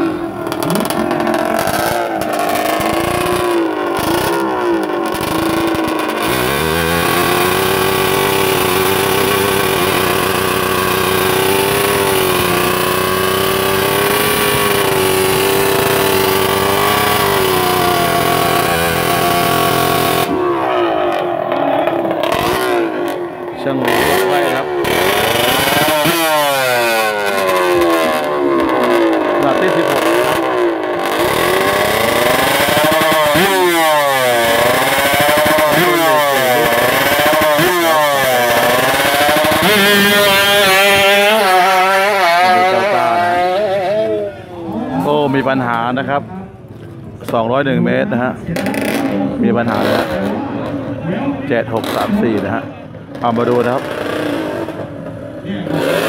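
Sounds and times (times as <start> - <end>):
two-stroke motorcycle engine revving: 0.0 - 46.3, 47.2 - 56.0.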